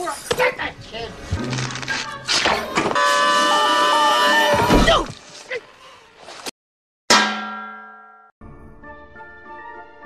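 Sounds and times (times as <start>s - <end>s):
background music: 8.4s - 10.0s.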